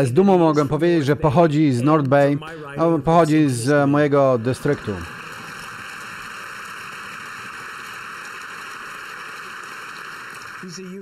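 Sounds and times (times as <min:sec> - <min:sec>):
applause: 0:04.4 - 0:11.0.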